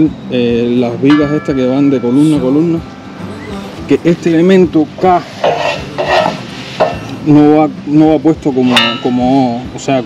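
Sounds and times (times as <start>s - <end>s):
metal beam scraping on artificial turf: 5.1s - 7.1s.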